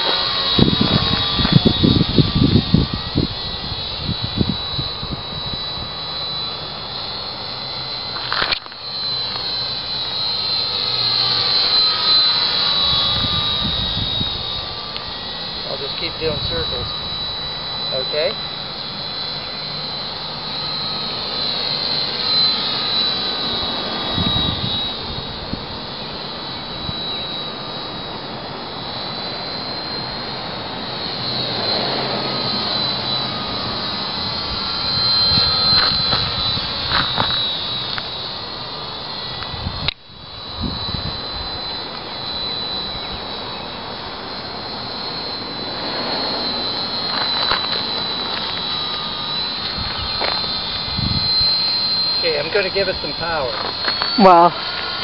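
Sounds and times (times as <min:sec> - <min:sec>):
model plane motor whine: 0:00.0 - 0:55.0.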